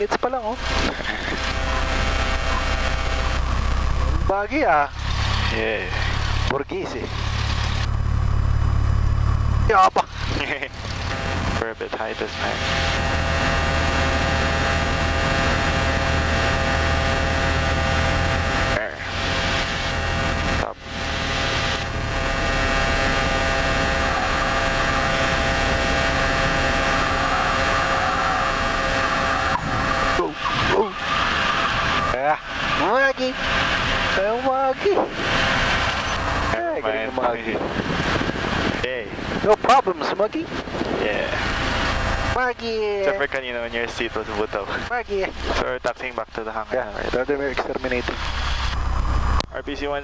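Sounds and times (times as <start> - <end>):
aircraft engine droning: 0.0 - 50.0
short wavering tones: 12.6 - 36.6.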